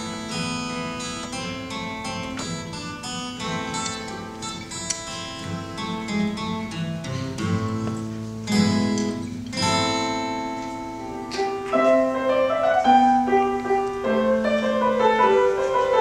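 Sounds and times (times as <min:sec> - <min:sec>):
acoustic guitars playing: 0:00.0 - 0:16.0
strummed guitar chords: 0:00.0 - 0:16.0.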